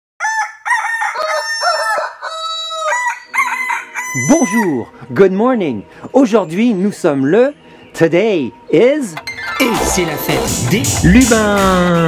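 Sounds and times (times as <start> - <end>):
rooster crowing: 0.2 - 4.8.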